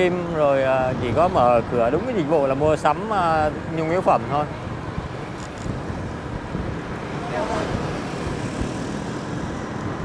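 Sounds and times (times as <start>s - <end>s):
scooter traffic: 0.0s - 10.0s.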